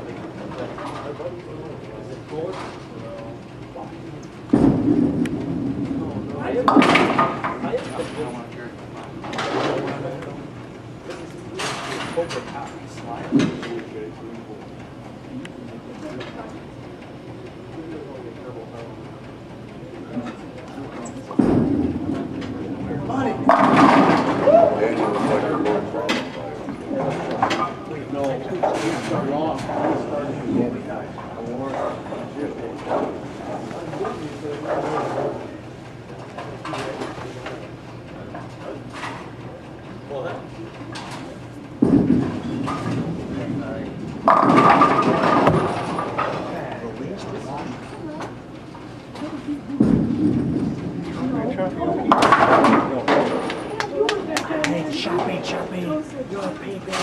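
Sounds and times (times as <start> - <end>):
people talking: 0.0 - 4.4, 5.9 - 8.8, 11.0 - 16.7, 17.7 - 19.1, 19.8 - 23.8, 24.4 - 33.1, 46.4 - 48.4, 51.1 - 57.0
bowling balls rolling: 21.4 - 26.0, 41.8 - 46.9, 49.2 - 53.8
bowling pins clattering: 23.4 - 26.3, 41.8 - 46.6, 49.8 - 51.3, 51.9 - 53.8.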